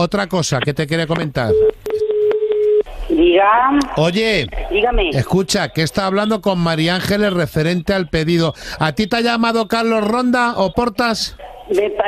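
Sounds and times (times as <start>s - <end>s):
voice on phone line: 3.1s - 12.0s.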